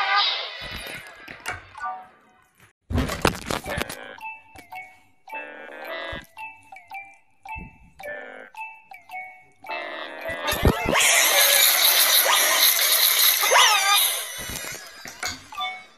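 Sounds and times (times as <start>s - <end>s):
distorted chime jingle: 9.7s - 15.9s.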